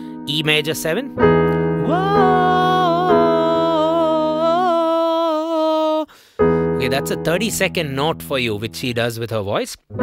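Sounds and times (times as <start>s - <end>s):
piano chord: 0.0s - 5.2s, 6.4s - 8.8s
man singing held note: 1.8s - 6.2s.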